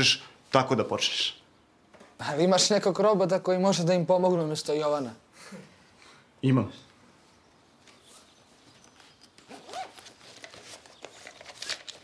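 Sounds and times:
bag rustling and handling: 0:08.0 - 0:12.0
bag zipper pulled open: 0:09.4 - 0:10.4.

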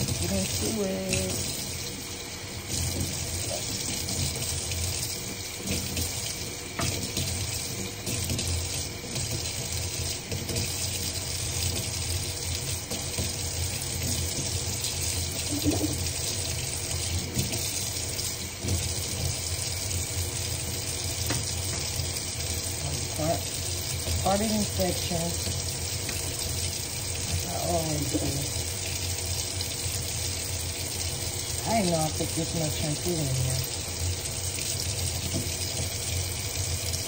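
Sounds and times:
faucet running into sink: 0:00.0 - 0:37.0.

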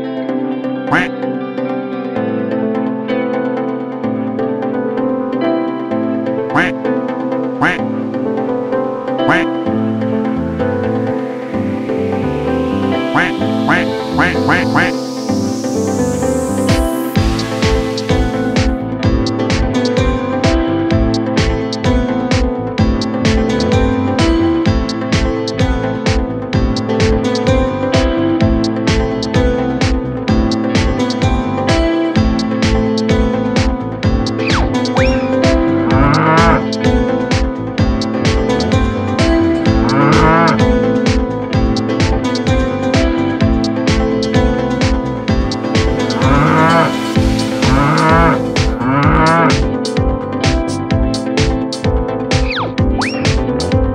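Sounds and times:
background music: 0:00.0 - 0:53.9
duck quacking: 0:00.9 - 0:01.1, 0:06.5 - 0:06.8, 0:07.6 - 0:07.8, 0:09.3 - 0:09.5, 0:13.1 - 0:15.0
cow mooing: 0:35.9 - 0:36.6, 0:39.8 - 0:40.6, 0:46.1 - 0:47.0, 0:47.6 - 0:49.6.

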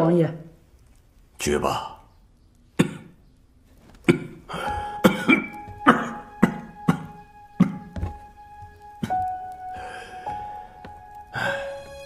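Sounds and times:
man coughing: 0:04.0 - 0:07.9
held soundtrack music note: 0:04.8 - 0:12.0.

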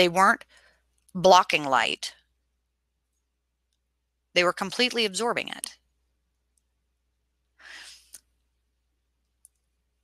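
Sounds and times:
woman breathing: 0:07.6 - 0:08.2.

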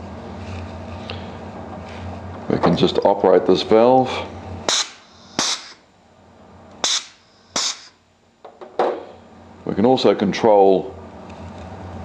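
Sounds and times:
air hissing from exhaust: 0:04.0 - 0:05.9, 0:06.8 - 0:08.0
pneumatic valve pop: 0:04.7 - 0:05.8, 0:06.8 - 0:08.0.

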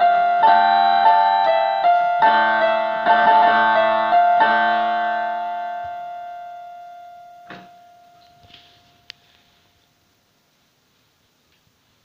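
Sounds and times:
electronic keyboard chord: 0:00.0 - 0:09.4.

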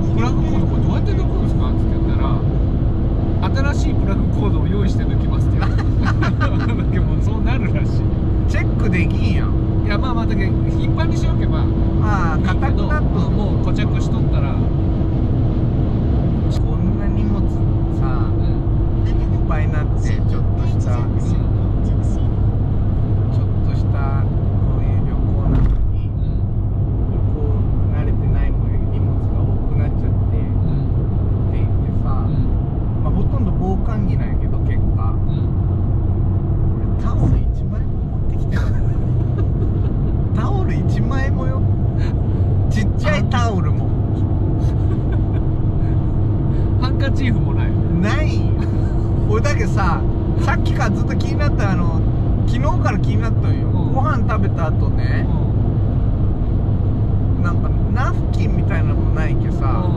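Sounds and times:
people talking: 0:00.0 - 0:02.5, 0:03.4 - 0:14.6, 0:16.5 - 0:22.3, 0:23.3 - 0:26.4, 0:27.1 - 0:30.9, 0:31.5 - 0:35.4, 0:36.8 - 0:55.5, 0:57.4 - 0:59.9
steady hum: 0:00.0 - 0:34.2, 0:35.0 - 0:59.8
car engine and tyres droning: 0:00.0 - 0:59.9.

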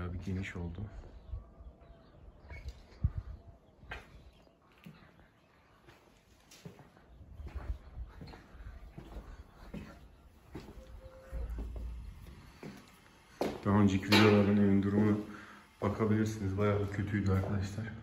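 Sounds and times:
footsteps and light knocks: 0:03.8 - 0:14.6, 0:16.8 - 0:17.9.

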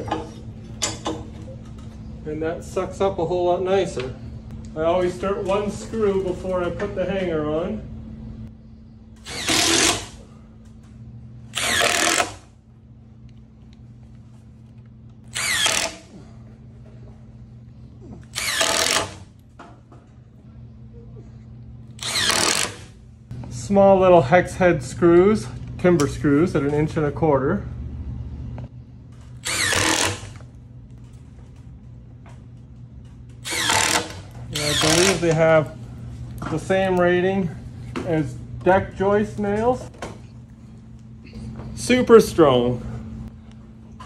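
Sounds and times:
impact driver driving screw into wood: 0:09.2 - 0:10.2, 0:11.6 - 0:12.4, 0:15.3 - 0:16.1, 0:18.3 - 0:19.2, 0:22.0 - 0:22.9, 0:29.4 - 0:30.4, 0:33.4 - 0:35.2.

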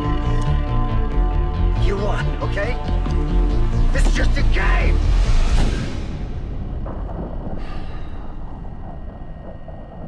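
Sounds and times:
deep rumble: 0:00.0 - 0:10.0
low dark ambient drone: 0:04.7 - 0:10.0.

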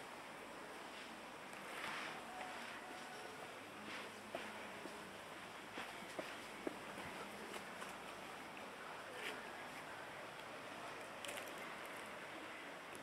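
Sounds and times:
faint outdoor hiss: 0:00.0 - 0:13.0.

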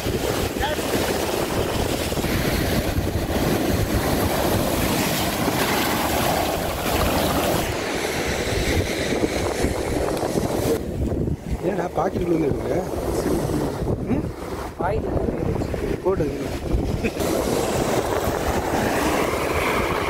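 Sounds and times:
sea surf washing ashore: 0:00.0 - 0:20.0
wind buffeting microphone: 0:00.0 - 0:20.0.

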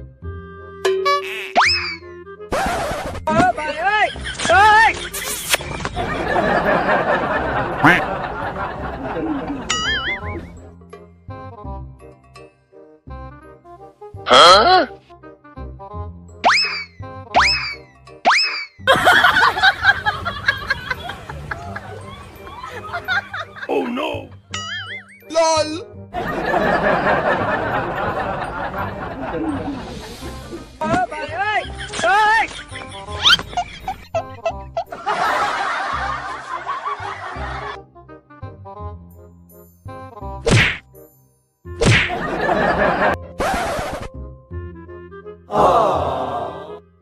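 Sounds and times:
bouncy comedy music: 0:00.0 - 0:41.1, 0:41.7 - 0:47.0
cartoon upward pitch sweeps: 0:01.2 - 0:02.1, 0:16.4 - 0:18.8.

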